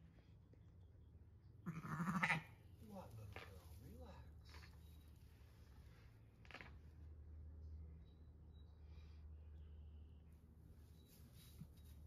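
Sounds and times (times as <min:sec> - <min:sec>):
sheep bleating: 0:01.7 - 0:02.5.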